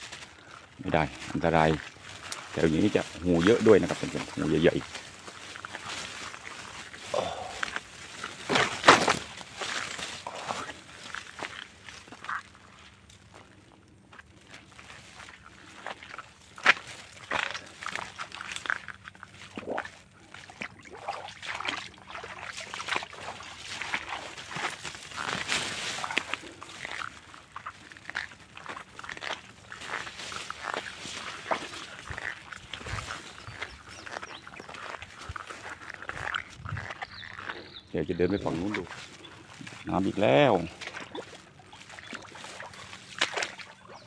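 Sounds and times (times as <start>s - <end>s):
footsteps through wet grass: 0.0s - 44.0s
squelching in mud: 0.0s - 44.0s.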